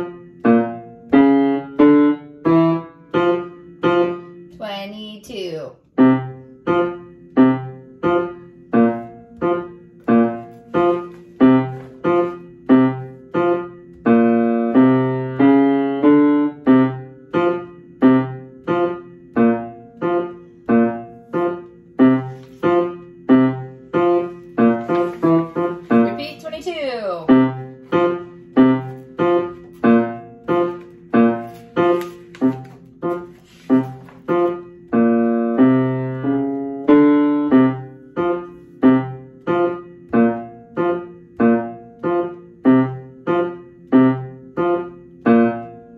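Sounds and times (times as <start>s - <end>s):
piano playing low detached notes: 0.0s - 4.6s, 5.8s - 45.9s
sheet music page rustle: 8.8s - 13.5s, 21.1s - 36.8s.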